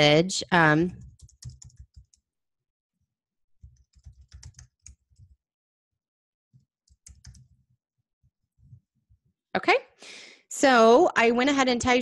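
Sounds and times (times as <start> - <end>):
keyboard typing: 0.9 - 2.2, 3.6 - 5.4, 6.6 - 7.6.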